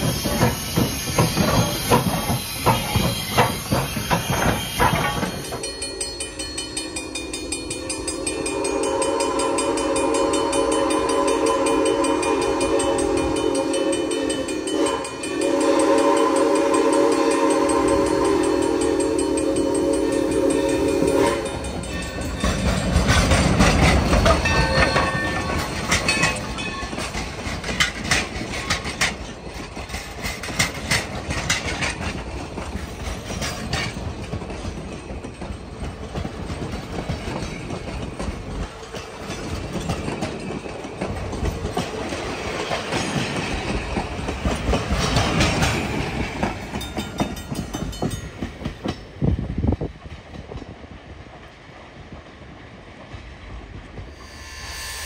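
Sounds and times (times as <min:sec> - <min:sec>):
wheels clacking over rail joints: 0:00.0 - 0:10.1, 0:10.8 - 0:51.6
steam locomotive chime whistle: 0:00.0 - 0:27.2, 0:54.0 - 0:55.0.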